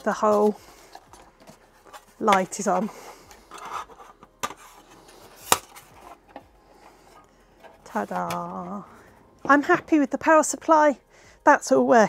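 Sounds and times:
soft rubbing of handling: 0.0 - 9.8.

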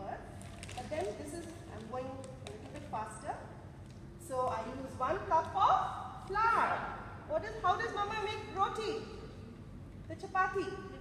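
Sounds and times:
woman speaking: 0.0 - 0.2, 0.8 - 3.5, 4.2 - 9.3, 10.1 - 11.0.

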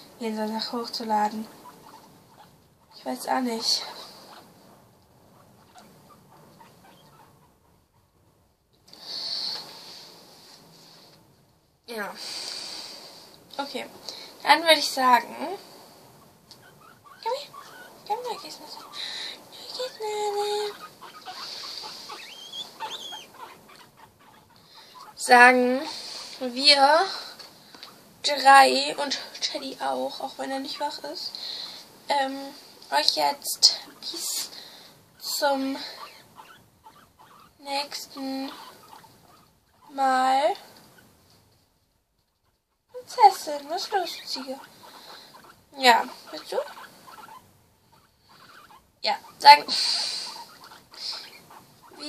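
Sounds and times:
guinea pig sounds: 0.0 - 11.3, 11.9 - 52.0
guinea pigs chewing greens: 16.6 - 26.8, 42.9 - 52.0
short high squeaks: 20.7 - 24.4.

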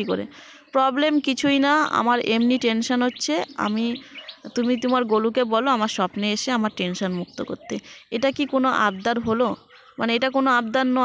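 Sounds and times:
faint bird chirps: 0.0 - 11.0
woman speaking: 0.0 - 11.0.

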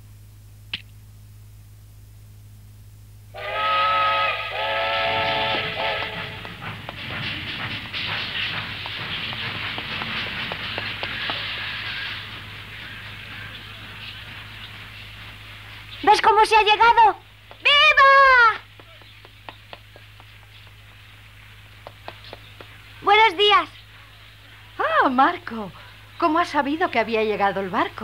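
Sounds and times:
ship steam whistle blasts: 3.3 - 6.6
rushing hiss with clicks: 4.5 - 25.8.

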